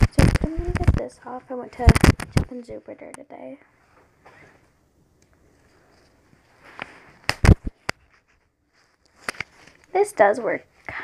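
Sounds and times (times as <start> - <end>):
sharp clicks: 1.8 - 3.2
faint rustle: 5.4 - 11.0.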